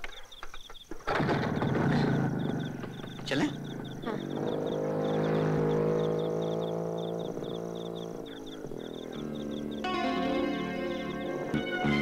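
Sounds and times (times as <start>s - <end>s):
motorcycle engine running: 1.1s - 12.0s.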